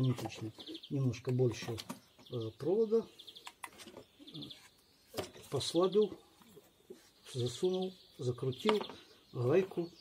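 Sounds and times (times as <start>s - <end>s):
bird chirping trills: 0.0s - 10.0s.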